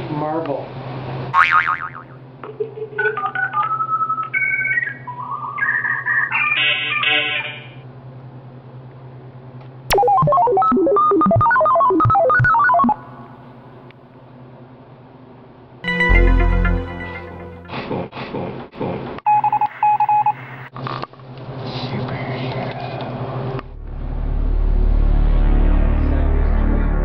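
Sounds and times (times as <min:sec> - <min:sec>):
electronic beeping tones: 0:09.9 - 0:13.3
steady low hum: 0:23.0 - 0:27.0.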